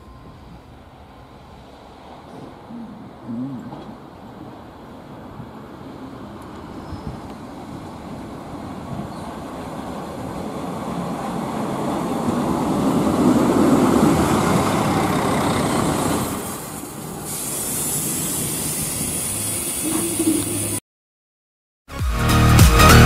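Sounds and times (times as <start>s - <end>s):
diesel railcar arriving: 0.0s - 20.8s.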